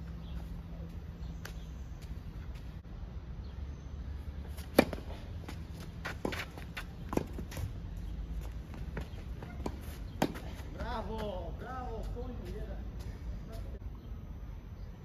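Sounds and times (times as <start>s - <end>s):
tennis ball struck by rackets: 4.5s - 7.6s, 9.0s - 10.6s
tennis ball bouncing: 4.5s - 7.7s, 8.4s - 11.3s.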